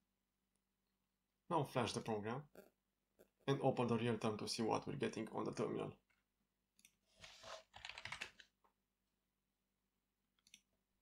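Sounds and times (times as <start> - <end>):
typing on a computer keyboard: 7.7 - 8.5.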